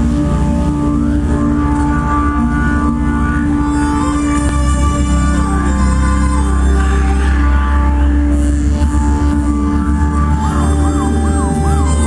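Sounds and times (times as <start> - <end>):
band playing droning chords: 0.0 - 12.0
deep bass note: 0.0 - 12.0.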